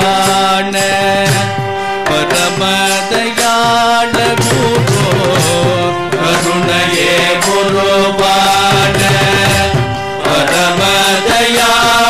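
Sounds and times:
devotional singing: 0:00.0 - 0:12.0
hand drums: 0:00.0 - 0:12.0.

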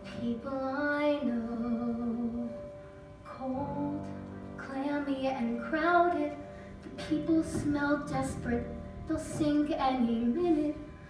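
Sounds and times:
girl singing a ballad: 0:00.0 - 0:11.0.

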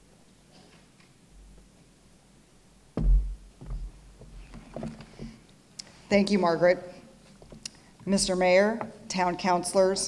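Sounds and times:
knocks on wooden podium: 0:03.0 - 0:05.4.

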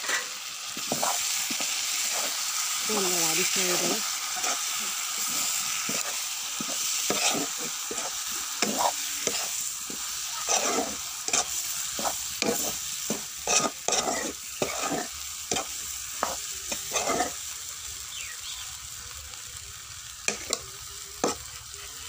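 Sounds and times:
stirring scraping the pan: 0:00.0 - 0:17.6, 0:20.3 - 0:20.6, 0:21.2 - 0:21.5
food sizzling in a pan: 0:00.0 - 0:22.0.

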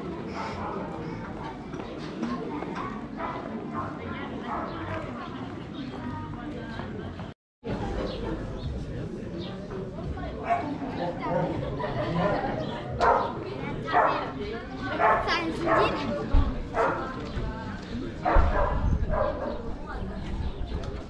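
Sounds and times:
people chattering: 0:00.0 - 0:21.0
dog barking: 0:10.4 - 0:10.8, 0:13.0 - 0:14.3, 0:15.0 - 0:16.0, 0:16.8 - 0:17.1, 0:18.3 - 0:19.6.

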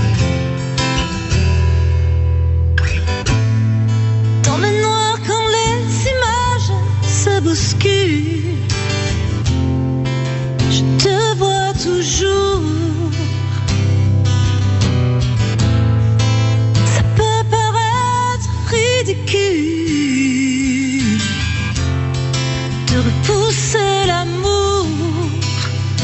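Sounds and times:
acoustic guitar strummed: 0:00.0 - 0:26.0
woman singing with vibrato: 0:04.4 - 0:09.2, 0:10.6 - 0:13.9, 0:16.8 - 0:21.8, 0:22.7 - 0:26.0.

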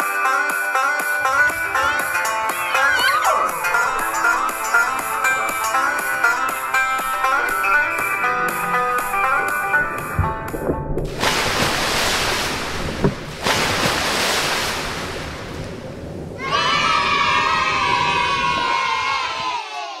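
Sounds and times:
pop music: 0:00.0 - 0:10.6
water splashing: 0:01.0 - 0:17.3
children shouting and cheering: 0:01.2 - 0:07.4, 0:16.4 - 0:20.0.

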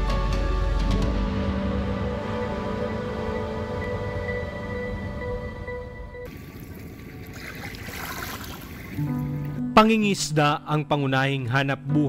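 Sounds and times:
instrumental music: 0:00.0 - 0:06.3, 0:09.0 - 0:12.0
small waves lapping on shore: 0:06.3 - 0:09.4.

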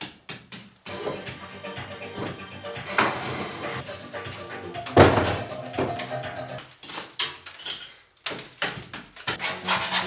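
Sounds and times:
scraper scraping plaster: 0:09.2 - 0:10.0.

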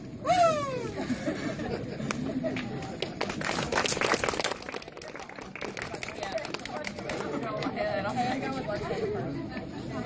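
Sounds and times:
women talking: 0:04.9 - 0:10.0.

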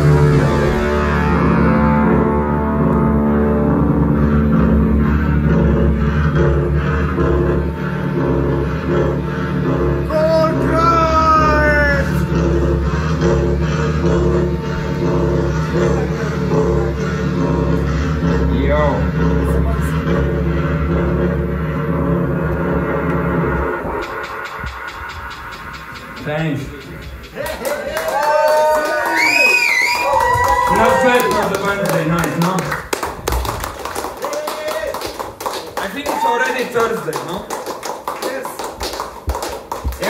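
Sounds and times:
band droning chord: 0:00.0 - 0:27.4
steady ticking: 0:22.5 - 0:27.6.

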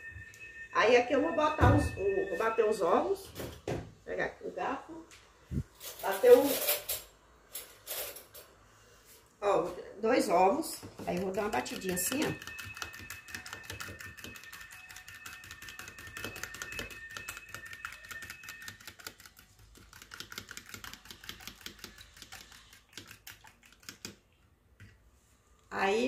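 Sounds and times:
fork beating eggs in plastic bowl: 0:10.6 - 0:24.5.

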